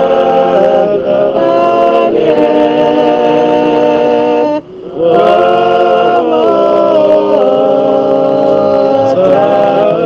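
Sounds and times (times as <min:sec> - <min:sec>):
group singing a hymn in harmony: 0:00.0 - 0:10.0.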